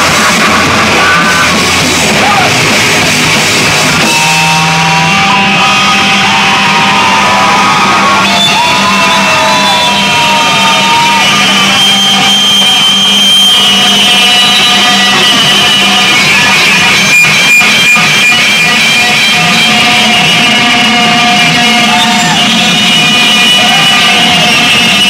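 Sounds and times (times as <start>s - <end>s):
electric guitar notes ringing: 0.0s - 8.5s.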